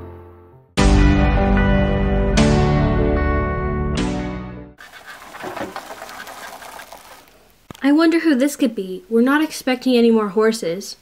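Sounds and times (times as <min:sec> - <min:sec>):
plastic wheels rolling on turf: 0:04.8 - 0:07.6.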